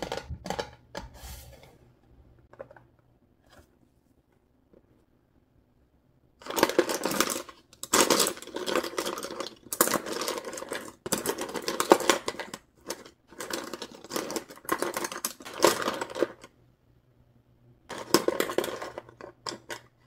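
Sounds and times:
paintbrushes rattling in plastic case: 6.4s - 16.5s, 17.9s - 20.0s.

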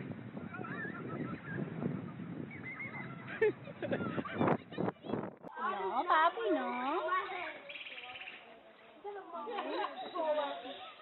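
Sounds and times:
distant voices of children and adults: 0.4s - 11.0s.

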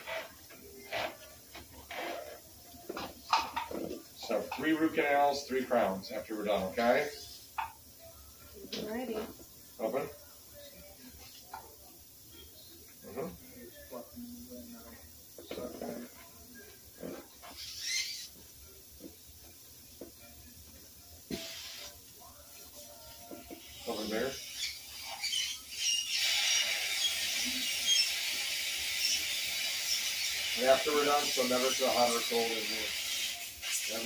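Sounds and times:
dental equipment hissing: 0.0s - 7.8s, 17.0s - 19.1s, 21.3s - 22.0s, 22.8s - 34.0s.

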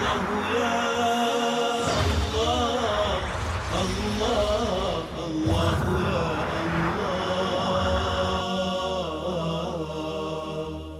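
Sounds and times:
melodic vocal chanting: 0.0s - 10.9s
steady low drone: 0.0s - 10.9s.

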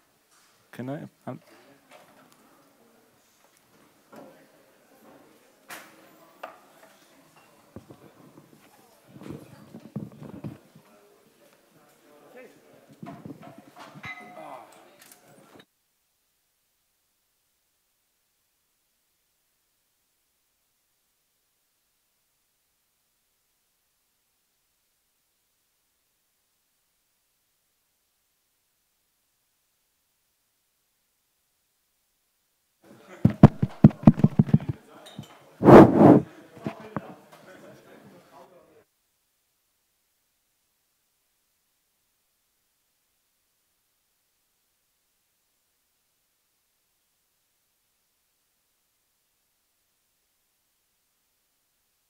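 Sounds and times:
microphone handling knocks: 33.3s - 34.8s, 35.6s - 36.3s
rustle on microphone: 35.6s - 36.8s.

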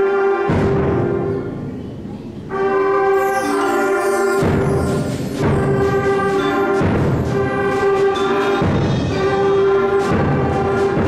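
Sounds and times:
concert band playing: 0.0s - 11.0s.

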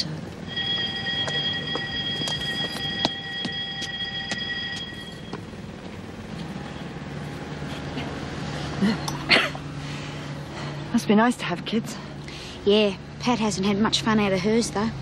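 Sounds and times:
bell ringing: 0.4s - 5.7s.

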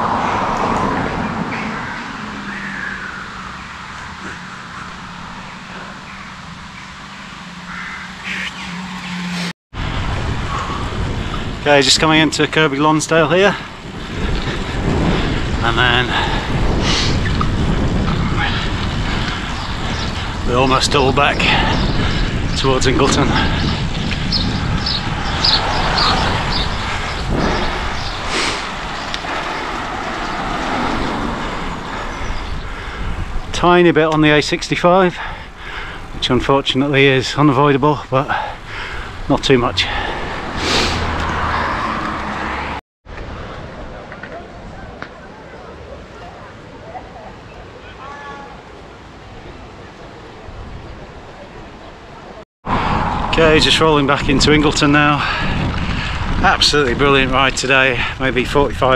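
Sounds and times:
distant voices: 0.0s - 9.4s, 10.1s - 58.9s
car passing: 0.0s - 33.4s, 38.3s - 48.1s, 48.8s - 58.9s
bicycle tyre and road noise: 0.0s - 58.9s
wind on camera microphone: 9.7s - 12.6s, 13.2s - 34.5s, 50.4s - 58.9s.

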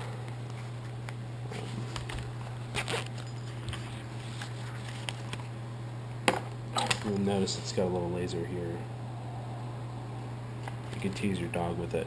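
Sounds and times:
steady low hum: 0.0s - 12.0s
pouch being unzipped: 1.5s - 5.2s.

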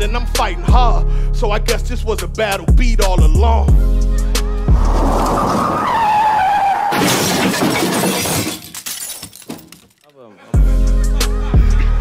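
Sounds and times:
hip-hop beat with heavy bass: 0.0s - 5.0s, 10.6s - 12.0s.

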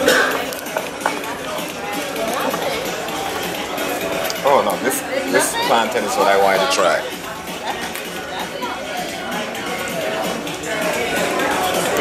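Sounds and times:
overlapping conversation: 0.4s - 12.0s.

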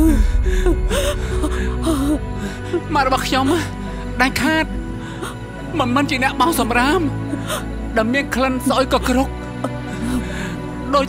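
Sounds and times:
person sobbing: 0.0s - 3.8s
music with long held notes: 0.0s - 11.0s.

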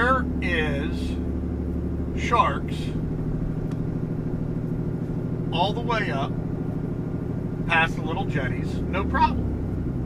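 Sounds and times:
vehicle engine and road noise: 0.0s - 10.0s.

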